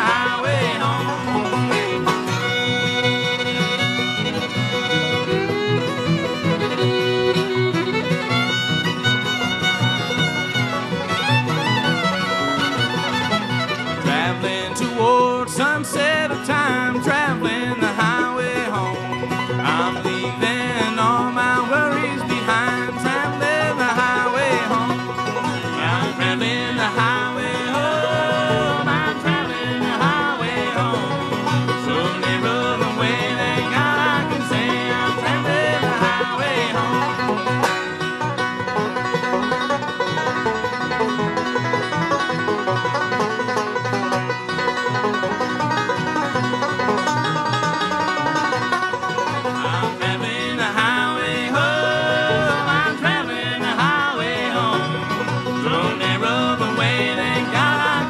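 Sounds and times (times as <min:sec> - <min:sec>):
banjo picking: 0:00.0 - 0:58.0
bluegrass band playing: 0:00.0 - 0:58.0
fiddle with sliding notes: 0:00.0 - 0:58.0.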